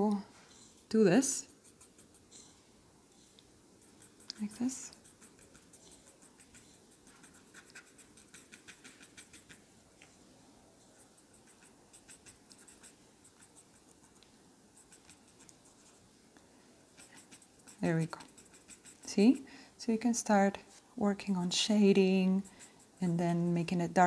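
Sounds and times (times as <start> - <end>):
paper stump scratching on paper: 3.8 - 9.5, 17.0 - 19.1.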